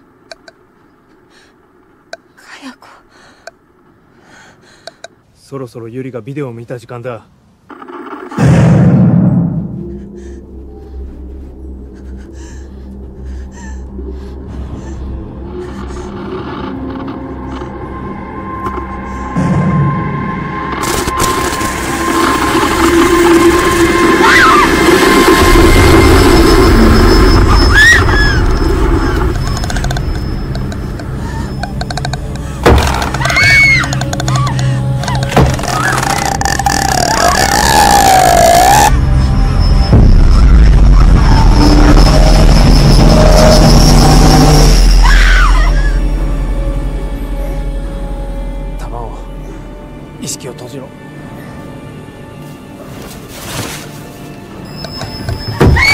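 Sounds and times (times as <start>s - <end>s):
eerie droning score: 7.7s - 55.9s.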